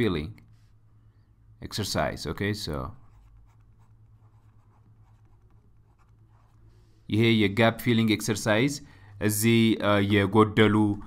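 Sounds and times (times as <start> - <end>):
steady low hum: 0.0 - 11.0
stylus scratching on tablet: 3.0 - 6.7.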